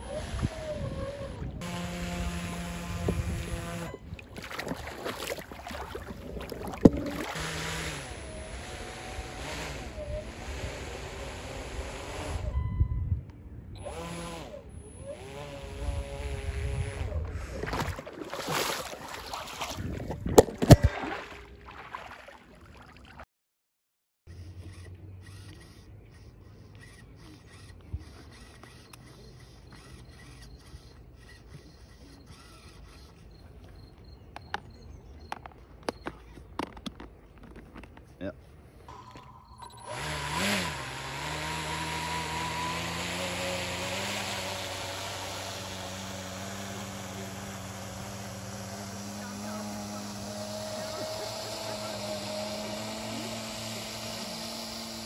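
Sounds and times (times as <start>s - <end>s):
propeller motor whining: 0.0s - 12.6s, 24.3s - 34.7s, 38.9s - 55.0s
faint outdoor background: 0.0s - 18.0s, 24.3s - 55.0s.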